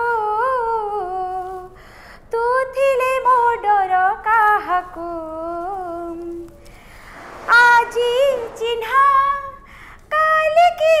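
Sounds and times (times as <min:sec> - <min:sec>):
short breath: 0:01.8 - 0:02.3
woman singing unaccompanied: 0:02.3 - 0:06.5.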